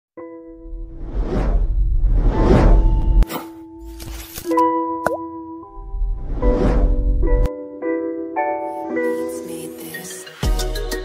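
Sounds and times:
deep rumble: 0:00.7 - 0:03.2
whoosh: 0:00.8 - 0:03.2, 0:06.0 - 0:07.5.

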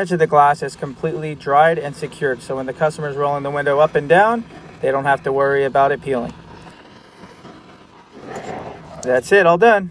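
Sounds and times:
torch flame hissing: 0:00.0 - 0:09.8.

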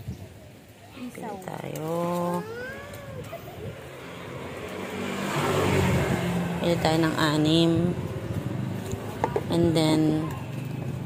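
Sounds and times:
vehicle engine passing by: 0:02.2 - 0:11.0.

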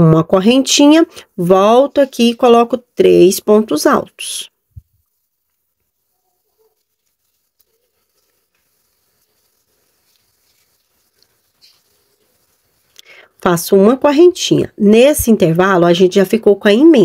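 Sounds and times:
crochet hook working yarn: 0:04.7 - 0:13.5.

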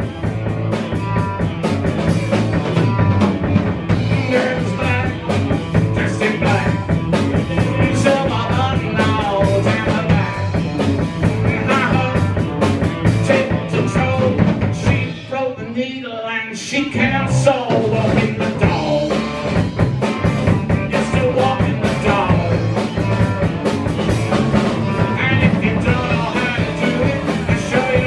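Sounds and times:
drum kit: 0:00.0 - 0:15.5, 0:16.9 - 0:28.0
bass guitar: 0:00.0 - 0:28.0
electric guitar: 0:00.0 - 0:28.0
person singing: 0:03.9 - 0:19.8, 0:20.5 - 0:23.4, 0:24.8 - 0:28.0.

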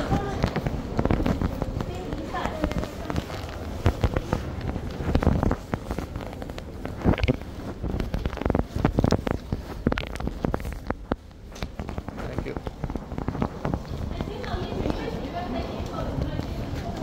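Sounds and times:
voices: 0:00.0 - 0:07.4, 0:13.6 - 0:17.0.

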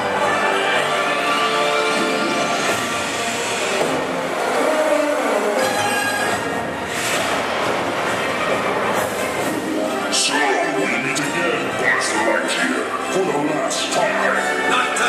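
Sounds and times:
dramatic music over loudspeakers: 0:00.0 - 0:15.0
fountain jets rushing: 0:00.0 - 0:15.0.

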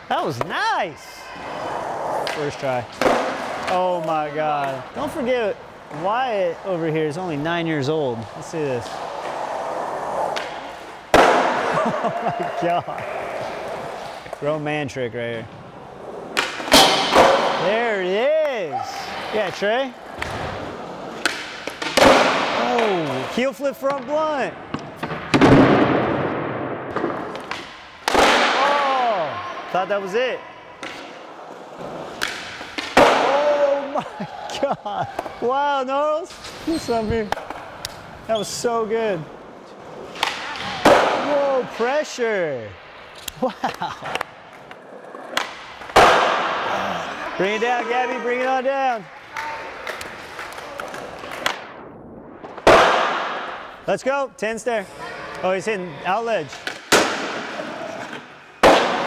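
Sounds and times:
skateboard wheels rolling on concrete: 0:01.4 - 0:35.5
skateboard landing smack: 0:21.2 - 0:22.6, 0:24.7 - 0:28.7, 0:40.2 - 0:41.2, 0:45.3 - 0:46.6, 0:52.4 - 0:53.5, 0:56.6 - 0:57.6, 0:58.6 - 0:59.0.

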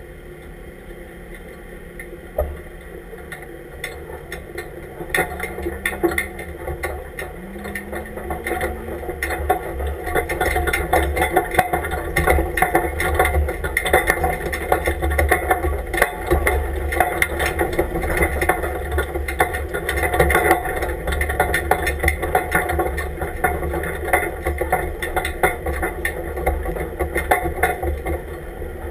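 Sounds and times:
truck engine rumble: 0:00.0 - 0:28.9
body and gear rattling: 0:03.2 - 0:28.9.

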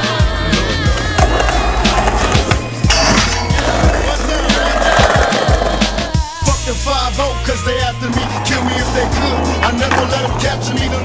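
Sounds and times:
hip-hop music with bass line: 0:00.0 - 0:11.0
skateboard wheels rolling: 0:00.0 - 0:11.0
skateboard popping and landing: 0:00.8 - 0:06.2, 0:08.1 - 0:11.0.

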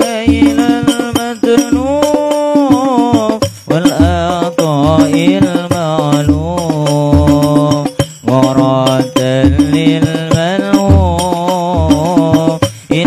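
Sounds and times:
man singing through microphone: 0:00.0 - 0:13.0
rhythmic percussion: 0:00.0 - 0:13.0.

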